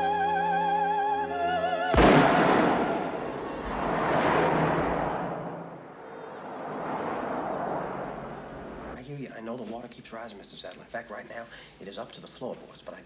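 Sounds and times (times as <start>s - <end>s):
opera music: 0.0s - 4.0s
revolver shot: 1.9s - 3.8s
road traffic passing: 2.1s - 9.0s.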